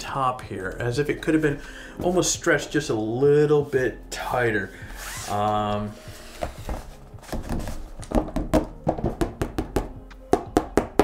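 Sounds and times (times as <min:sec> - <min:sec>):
fingers tapping on canvas: 0:08.0 - 0:11.0.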